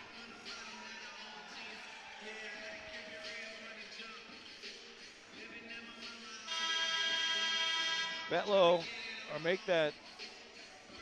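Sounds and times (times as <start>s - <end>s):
faint arena music: 0.0s - 11.0s
arena horn: 6.5s - 8.8s.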